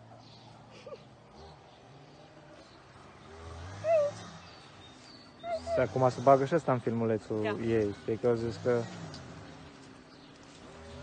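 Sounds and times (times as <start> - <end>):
dog yelping: 3.8 - 4.2, 5.4 - 6.1.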